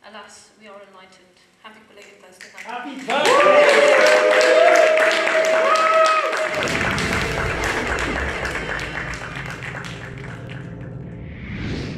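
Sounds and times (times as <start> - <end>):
audience applause: 2.9 - 11.0
cheering voices: 3.0 - 10.6.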